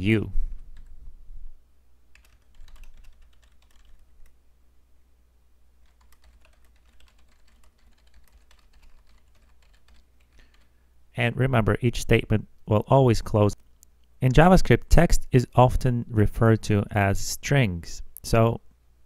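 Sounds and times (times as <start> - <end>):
low steady hum: 0.0 - 19.0
keyboard typing: 2.1 - 4.4, 5.8 - 10.7.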